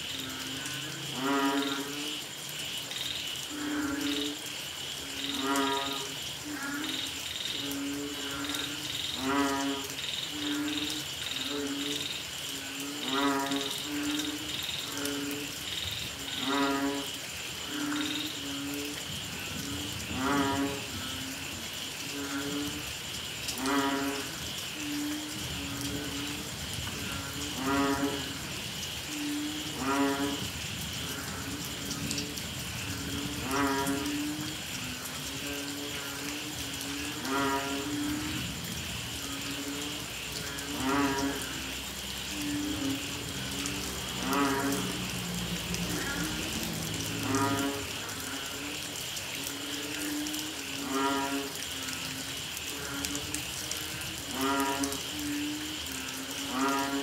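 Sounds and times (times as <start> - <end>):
frogs low moo-like calls: 0.0 - 57.0
high-pitched frog chorus: 0.0 - 57.0
nearer loud frog call: 0.0 - 57.0.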